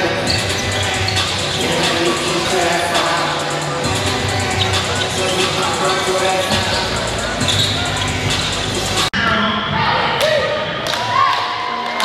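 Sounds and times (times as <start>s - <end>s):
music in gym: 0.0s - 12.0s.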